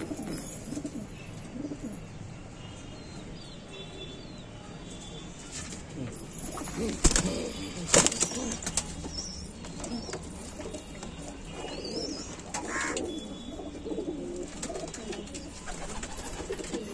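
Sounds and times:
pigeons cooing: 0:06.0 - 0:09.1, 0:09.8 - 0:16.9.

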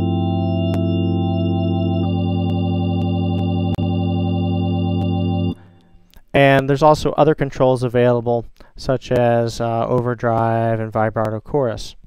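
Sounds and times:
organ chords: 0:00.0 - 0:06.1.

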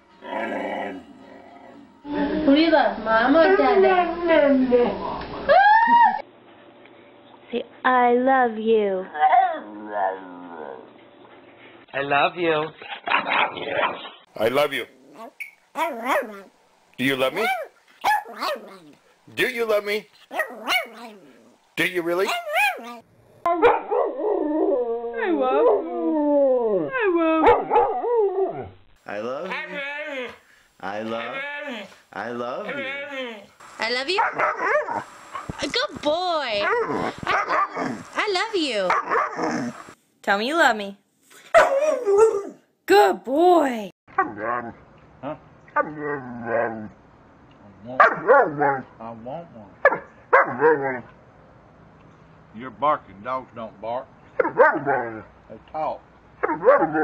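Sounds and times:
dog howling: 0:22.2 - 0:28.8, 0:29.4 - 0:30.4, 0:31.0 - 0:32.0, 0:32.6 - 0:33.5, 0:41.6 - 0:42.6.

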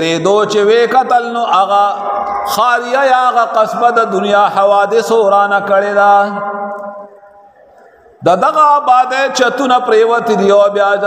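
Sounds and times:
man preaching in sing-song: 0:00.0 - 0:07.1, 0:08.2 - 0:11.0.

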